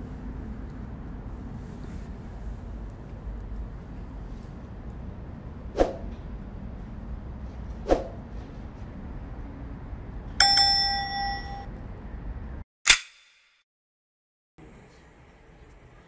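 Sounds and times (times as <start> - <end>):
bell-like ding: 10.4 - 11.7.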